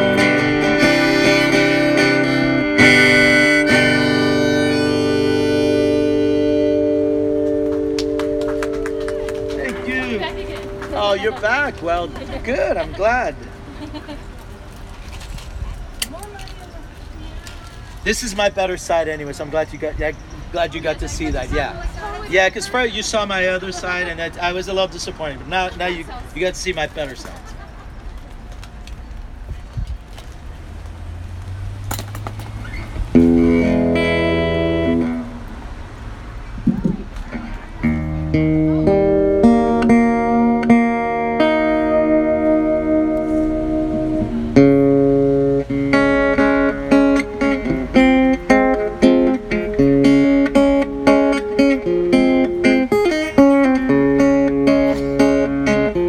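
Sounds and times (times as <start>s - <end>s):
harmonica: 0.0s - 11.1s, 37.8s - 56.0s
acoustic guitar chord ringing: 0.0s - 13.4s, 33.2s - 35.5s, 37.3s - 56.0s
quiet street background: 0.0s - 56.0s.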